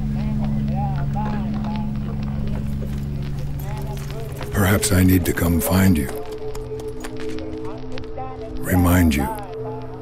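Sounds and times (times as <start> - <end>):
steady low drone: 0.0 - 10.0.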